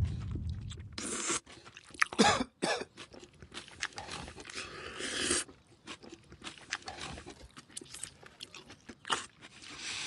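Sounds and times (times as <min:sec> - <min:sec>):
man chewing and smacking: 0:00.0 - 0:10.0
loud throat cough: 0:02.2 - 0:03.0.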